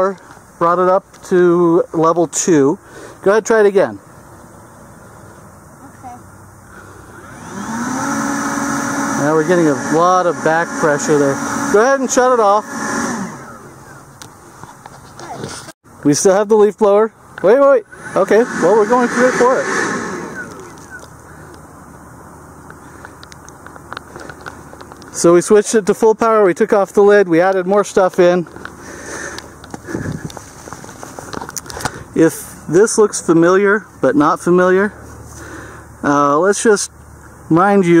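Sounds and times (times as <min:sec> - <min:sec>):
leaf blower whining: 0:06.7 - 0:14.1, 0:17.4 - 0:21.6, 0:28.4 - 0:32.7
low outdoor rumble: 0:09.2 - 0:38.0.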